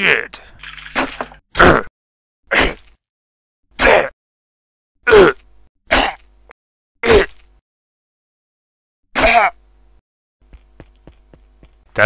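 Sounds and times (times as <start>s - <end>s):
person crying out in pain: 5.1s - 6.1s, 9.2s - 9.6s.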